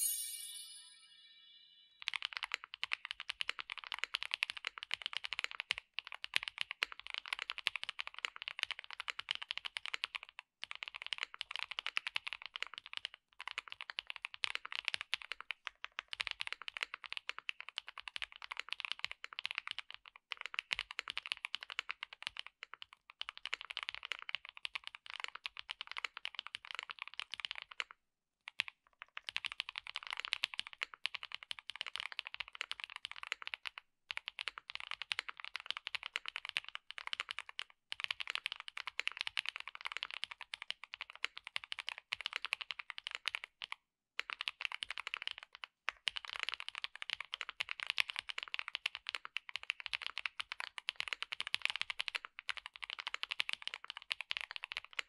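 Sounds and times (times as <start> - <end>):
mechanical keyboard typing: 2.9 - 27.9, 28.5 - 55.0.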